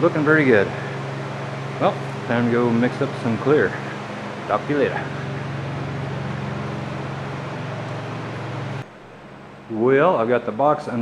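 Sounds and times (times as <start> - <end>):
machine humming with rushing air: 0.0 - 11.0.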